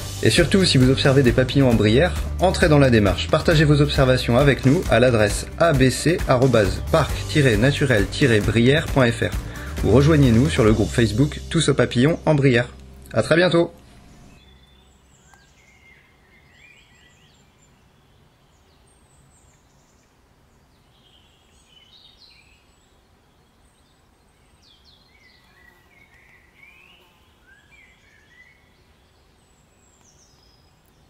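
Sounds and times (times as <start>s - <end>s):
faint birdsong chirping: 0.0s - 31.0s.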